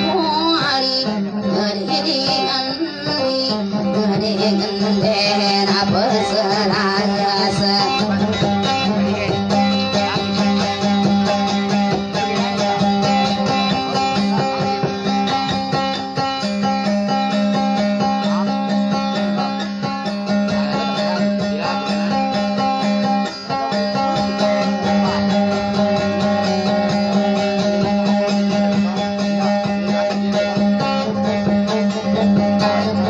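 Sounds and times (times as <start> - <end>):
guitar plucked notes: 0.0 - 33.0.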